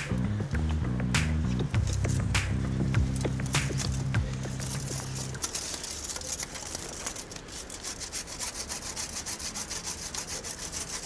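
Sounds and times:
hand saw cutting wood: 3.2s - 11.0s.

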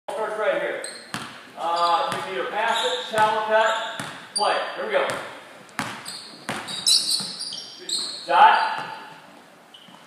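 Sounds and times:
basketball bouncing on hardwood: 1.1s - 1.4s, 2.1s - 2.4s, 4.0s - 4.3s, 5.1s - 7.4s.

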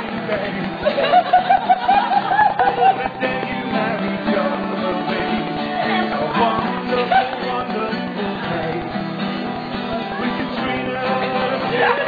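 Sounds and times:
acoustic guitar strumming: 0.0s - 12.0s
person singing: 2.4s - 12.0s.

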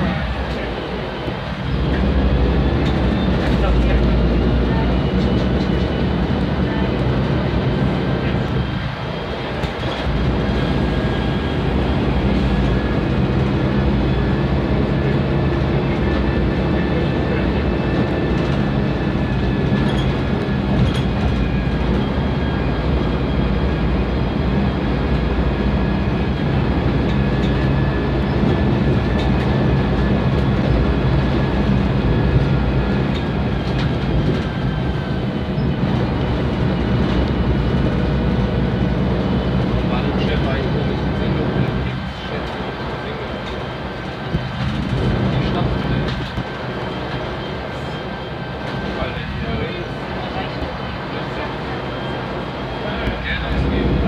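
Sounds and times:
bus diesel engine running: 0.0s - 54.0s.

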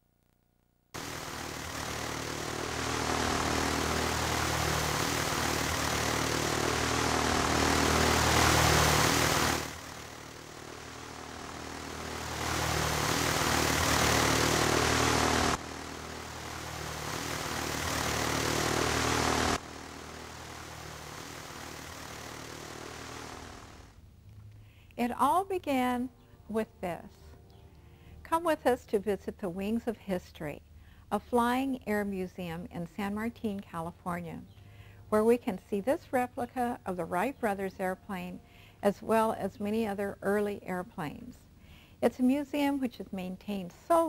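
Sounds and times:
propeller airplane engine: 1.0s - 24.0s.

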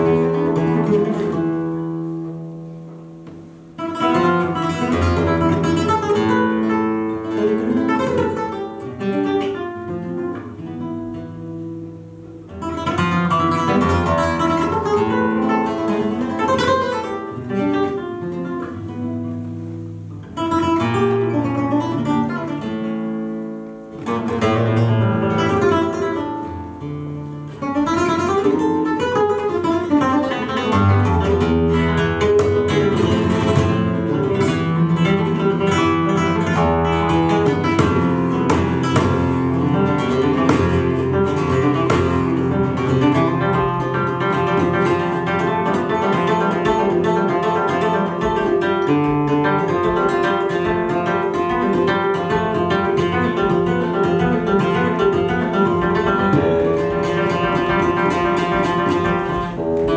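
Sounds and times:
solo flamenco guitar: 0.0s - 59.9s.

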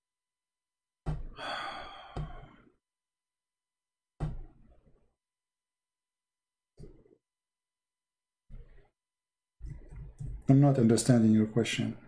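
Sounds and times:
man sighing: 1.3s - 2.5s.

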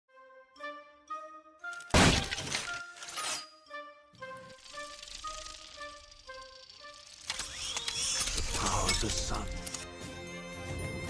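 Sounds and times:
background music: 0.1s - 11.0s
loud shattering crash: 1.9s - 2.7s.

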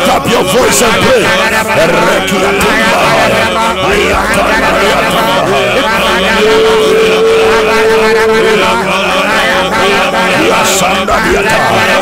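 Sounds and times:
men singing together: 0.0s - 12.0s
voice holding long note: 0.0s - 12.0s.

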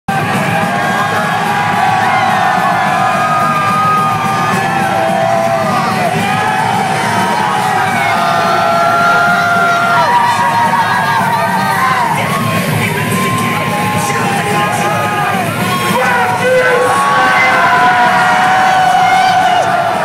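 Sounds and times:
crowd yelling and whooping: 0.1s - 20.0s
loud music: 0.1s - 20.0s.

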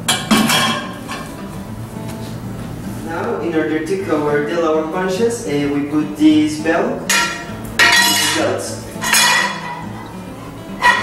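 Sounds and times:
metal clanking on metal: 0.0s - 1.4s, 7.1s - 10.1s, 10.8s - 11.0s.

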